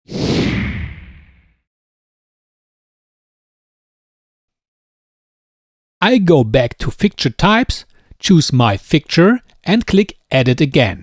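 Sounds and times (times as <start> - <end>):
whoosh with low rumble: 0.1 - 1.6.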